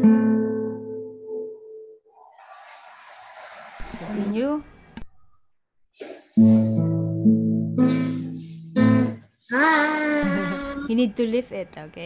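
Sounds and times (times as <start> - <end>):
acoustic guitar note: 6.0 - 10.9.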